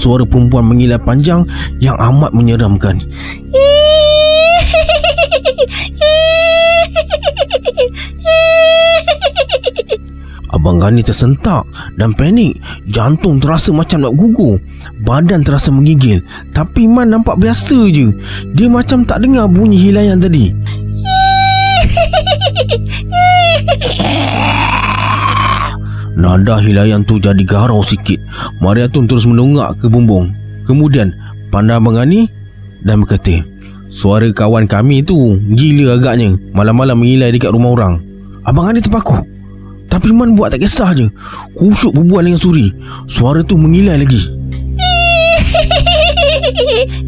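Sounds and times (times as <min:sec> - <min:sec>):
low music drone: 0:00.0 - 0:47.0
shrill shrieking cackle: 0:03.6 - 0:10.0, 0:21.0 - 0:25.8, 0:44.8 - 0:47.0
breathy rising wail: 0:22.9 - 0:25.8
woman shrill cackling laugh: 0:45.2 - 0:46.8.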